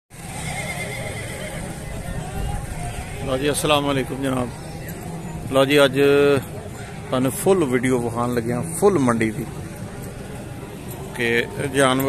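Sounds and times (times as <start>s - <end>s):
horse whinnying: 0.2s - 1.8s.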